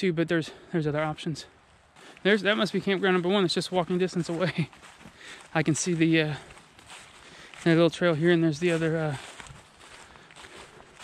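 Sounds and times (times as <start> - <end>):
footsteps through dry leaves: 1.9 - 11.0.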